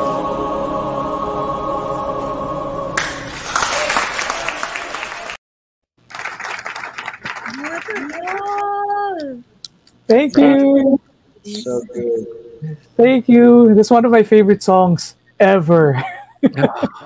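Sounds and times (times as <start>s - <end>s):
choir singing held chord: 0.0s - 3.4s
audience applause: 3.0s - 5.4s, 6.0s - 8.9s
clapping over a video call: 3.0s - 5.4s, 6.0s - 9.3s
person calling out: 7.6s - 9.5s, 10.1s - 12.9s.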